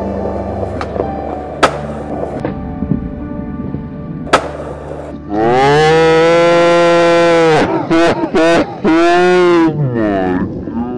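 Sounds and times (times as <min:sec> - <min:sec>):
skateboard impact: 0:00.0 - 0:03.0, 0:04.3 - 0:05.1
background music: 0:00.0 - 0:09.4
cow mooing: 0:05.3 - 0:10.9.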